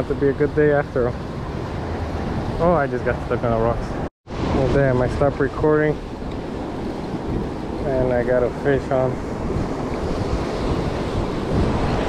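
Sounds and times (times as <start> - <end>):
wind buffeting microphone: 0.0 - 12.0
ocean surf washing over rocks: 4.3 - 12.0.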